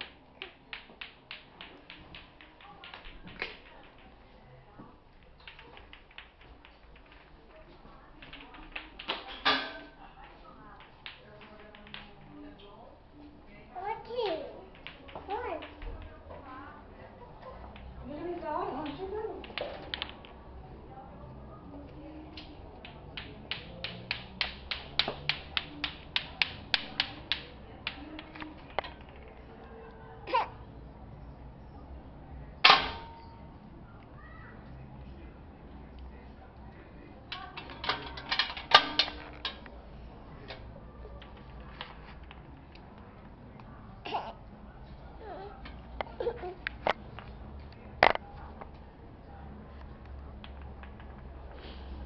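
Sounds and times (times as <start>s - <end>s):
toy taps on tiled floor: 0.0s - 4.2s, 4.8s - 7.4s, 8.2s - 12.8s, 14.0s - 16.6s, 17.4s - 20.4s, 22.3s - 29.7s, 37.3s - 39.8s, 45.6s - 48.8s, 50.0s - 51.4s.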